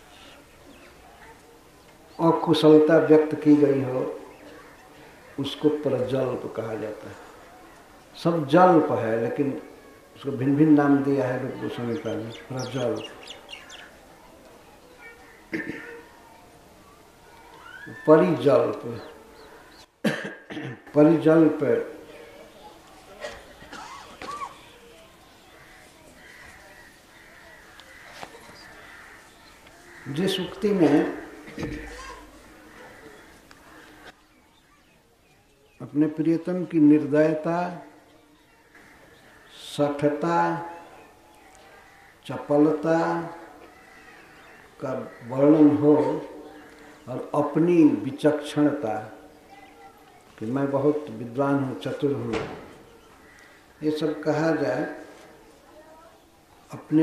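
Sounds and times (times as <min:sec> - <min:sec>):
person coughing: 0:15.5 - 0:16.0, 0:20.0 - 0:20.8
lecturer speaking: 0:30.0 - 0:32.3, 0:53.8 - 0:55.2
man lecturing: 0:44.8 - 0:46.4, 0:53.8 - 0:55.1.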